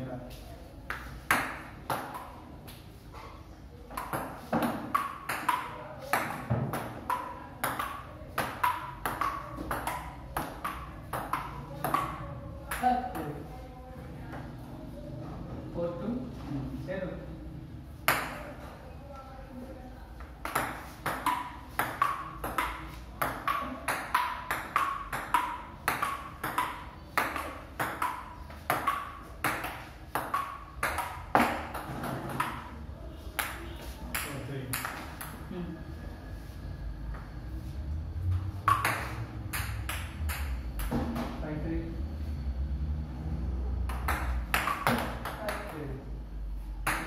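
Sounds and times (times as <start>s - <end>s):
table tennis ball hits: 0.9s - 2.4s, 3.9s - 13.4s, 18.0s - 18.6s, 20.2s - 32.8s, 33.4s - 35.4s, 38.5s - 41.4s, 43.8s - 46.0s.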